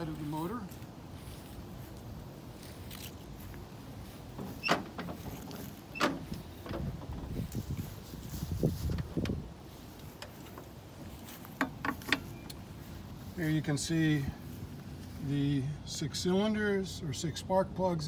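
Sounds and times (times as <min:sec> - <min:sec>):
low thumps of footsteps: 0:01.0 - 0:13.4.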